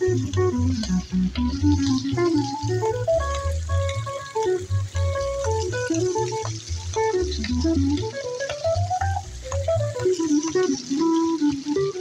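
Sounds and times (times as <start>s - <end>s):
electric guitar melody: 0.0s - 12.0s
plucked double bass: 0.0s - 12.0s.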